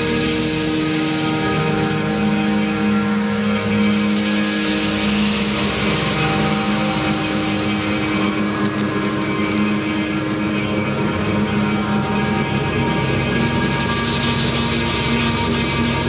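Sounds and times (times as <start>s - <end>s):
electric guitar: 0.0s - 16.0s.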